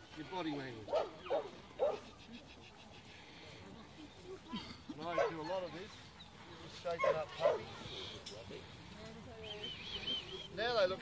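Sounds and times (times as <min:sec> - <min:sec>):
puppy barking: 0:00.9 - 0:02.1, 0:05.1 - 0:05.5, 0:07.0 - 0:07.7.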